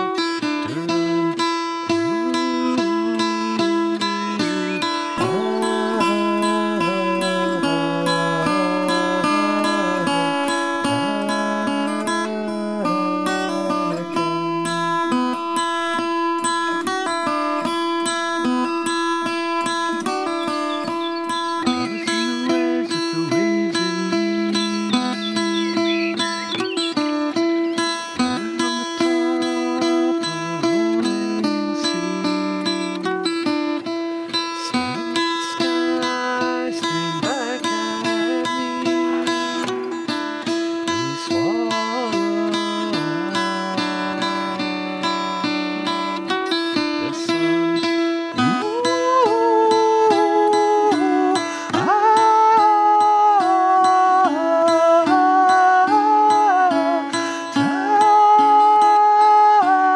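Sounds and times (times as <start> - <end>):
fingerpicked acoustic guitar: 0.0 - 59.9.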